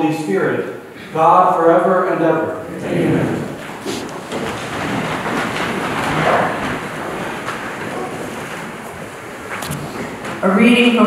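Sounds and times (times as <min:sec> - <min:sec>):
people rustling and shuffling: 0:00.9 - 0:11.0
knocks: 0:03.1 - 0:10.5.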